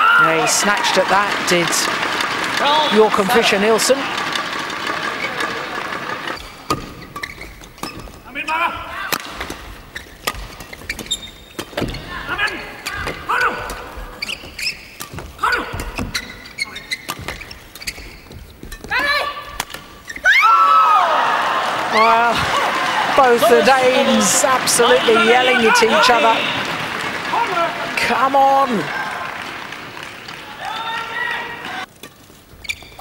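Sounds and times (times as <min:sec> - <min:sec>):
players shouting: 0:00.0 - 0:06.4, 0:20.2 - 0:31.9
racket hitting shuttlecock: 0:04.0 - 0:08.2, 0:09.1 - 0:12.0, 0:12.8 - 0:20.0
shoe squeaks: 0:05.0 - 0:09.0, 0:09.7 - 0:12.7, 0:13.3 - 0:20.3, 0:32.4 - 0:33.0
loud yelling: 0:20.2 - 0:29.4, 0:30.4 - 0:31.9.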